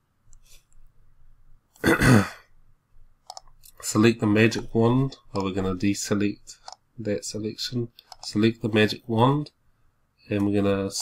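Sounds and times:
man coughing: 1.8s - 2.5s.

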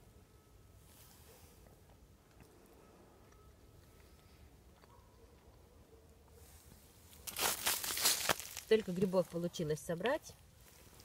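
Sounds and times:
plastic bag crinkling: 7.1s - 9.4s.

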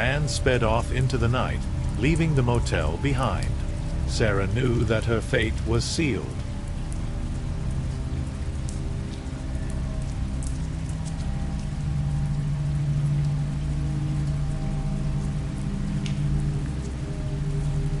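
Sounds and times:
faint crackles: 0.0s - 18.0s
low dark drone: 0.0s - 18.0s
rain: 0.0s - 18.0s.

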